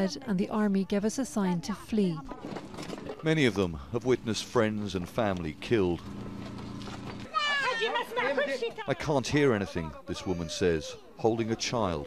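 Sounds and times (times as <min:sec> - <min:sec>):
steady low hum: 0:02.7 - 0:07.3
young child wailing: 0:07.3 - 0:08.4, 0:09.6 - 0:11.7.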